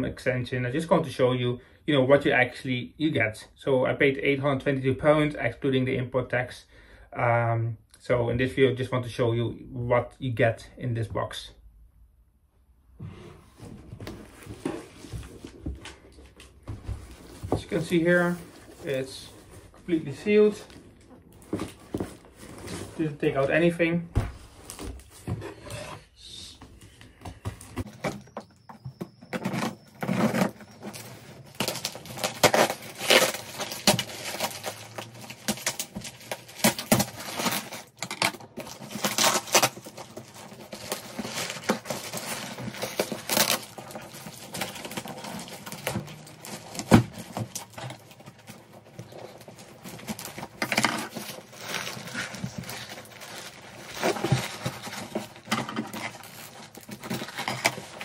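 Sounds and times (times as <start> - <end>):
cardboard scraping and rustling: 13.0 - 26.1, 26.8 - 58.0
packing tape ripping: 30.0 - 58.0.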